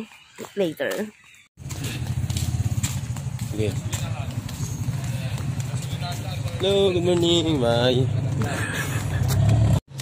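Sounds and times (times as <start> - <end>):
engine rumble with fast flutter: 1.6 - 10.0.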